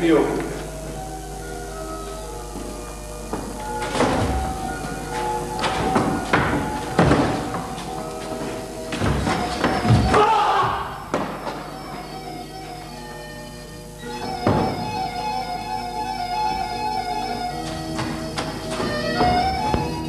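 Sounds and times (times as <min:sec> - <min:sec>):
background music: 0:00.0 - 0:20.0
heavy thuds and scuffles on stage: 0:03.4 - 0:11.7.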